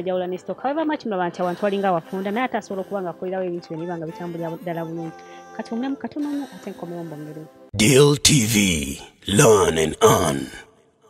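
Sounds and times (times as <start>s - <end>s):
person talking: 3.6s - 10.6s.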